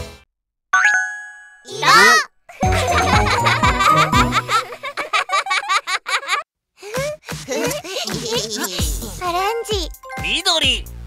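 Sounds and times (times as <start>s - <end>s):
bright cartoon chime: 0.8s - 1.7s
cartoon voice calling out: 1.7s - 2.3s.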